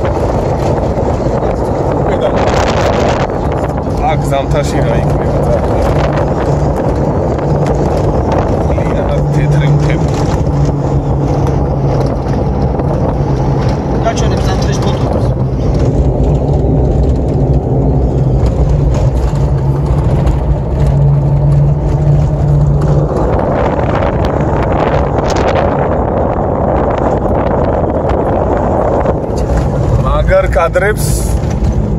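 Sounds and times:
car engine drone: 0:00.0 - 0:31.9
road rumble: 0:00.0 - 0:31.9
wind noise: 0:00.0 - 0:31.9.

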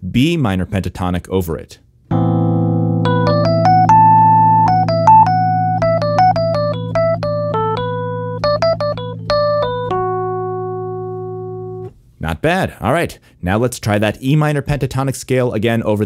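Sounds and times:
keyboard low chord: 0:02.1 - 0:11.9
quick keyboard melody: 0:02.1 - 0:11.9.

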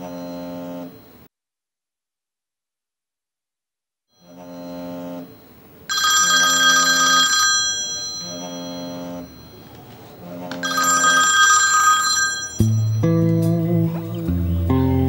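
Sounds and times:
mobile phone ringtone: 0:04.2 - 0:05.3, 0:05.9 - 0:13.6
bright chiming: 0:05.9 - 0:14.2.

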